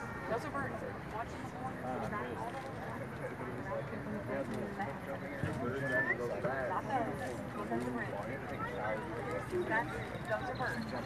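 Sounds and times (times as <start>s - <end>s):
chatter of many people: 0.0s - 11.0s.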